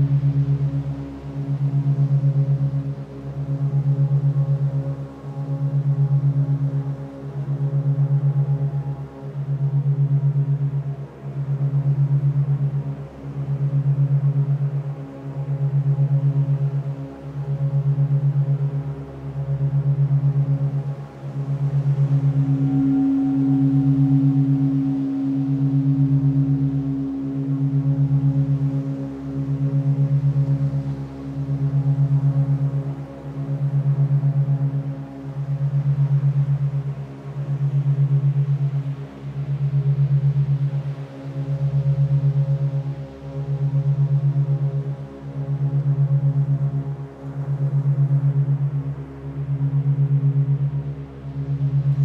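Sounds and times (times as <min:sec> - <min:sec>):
pulsing meditation drone: 0:00.0 - 0:52.0.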